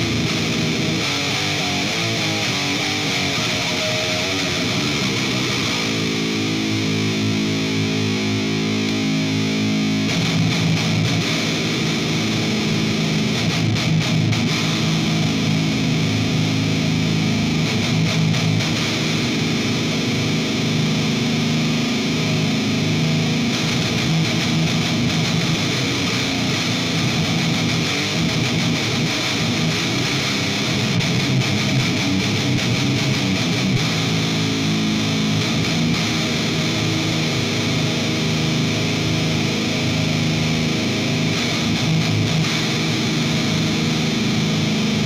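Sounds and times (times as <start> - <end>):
distorted electric guitar: 0.0 - 45.0.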